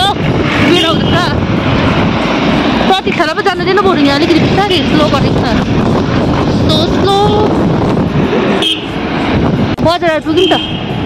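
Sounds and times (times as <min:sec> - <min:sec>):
people talking: 0:00.0 - 0:01.4, 0:02.9 - 0:05.7, 0:06.6 - 0:07.6, 0:09.8 - 0:10.7
scooter road noise in traffic: 0:00.0 - 0:11.0
wind rushing over microphone: 0:00.0 - 0:11.0.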